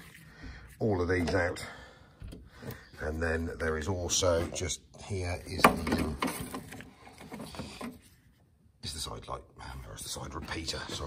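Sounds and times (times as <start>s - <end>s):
wiring rustling: 5.4s - 8.4s.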